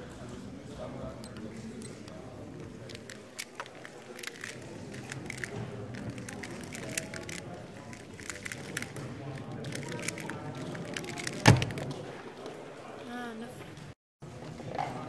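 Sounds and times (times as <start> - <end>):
puzzle layers clicking: 2.8 - 11.9.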